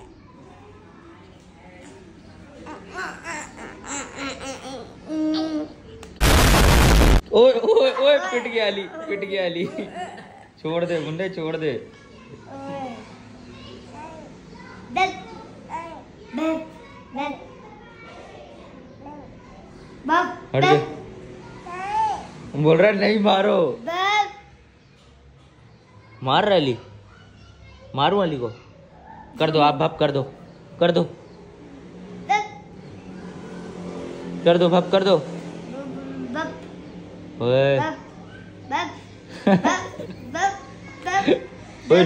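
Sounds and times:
toddler vocalizing: 1.8 - 5.8, 21.6 - 22.4, 35.7 - 36.7, 39.8 - 41.4.

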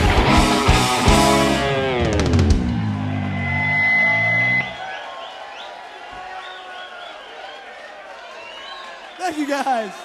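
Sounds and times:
rock band holding a chord: 0.0 - 4.8
crowd cheering and whooping: 0.0 - 10.0
steady high tone: 3.2 - 4.8.

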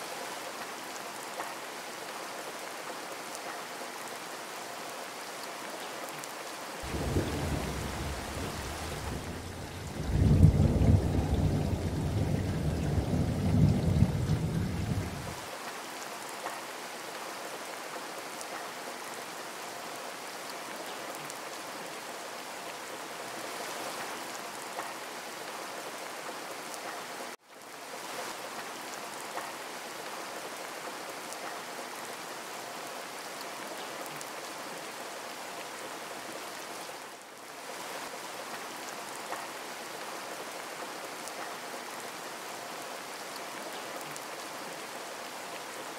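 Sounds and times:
steady rain: 0.0 - 45.9
thunder rumbling: 6.8 - 15.4.

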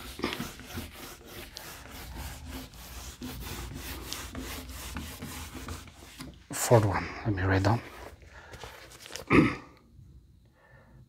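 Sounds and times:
eraser rubbing on whiteboard: 0.0 - 6.5.

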